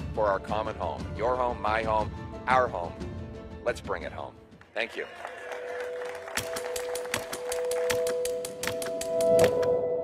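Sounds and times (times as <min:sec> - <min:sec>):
rapid sharp clicks: 0:06.4 - 0:09.7.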